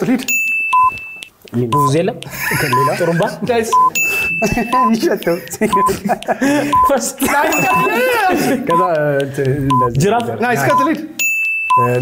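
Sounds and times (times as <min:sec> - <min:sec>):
countdown timer beeping: 0:00.2 - 0:12.0
lively voices: 0:01.5 - 0:12.0.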